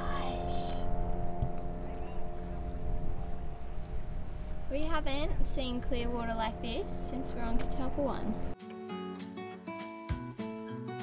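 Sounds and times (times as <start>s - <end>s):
girl's voice: 0.0s - 0.9s, 4.7s - 8.4s
low rumble: 0.0s - 8.6s
sustained music chord: 0.0s - 8.6s.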